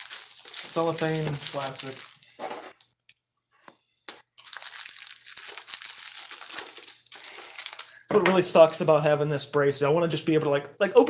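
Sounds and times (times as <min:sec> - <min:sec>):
cellophane crinkling: 0:00.0 - 0:03.2, 0:04.1 - 0:08.9.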